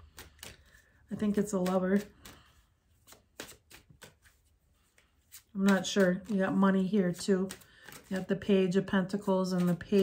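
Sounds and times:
cards clicking and rustling: 0.0 - 10.0.

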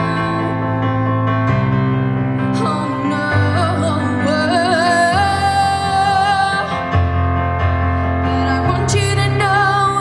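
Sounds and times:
instrumental accompaniment: 0.0 - 10.0.

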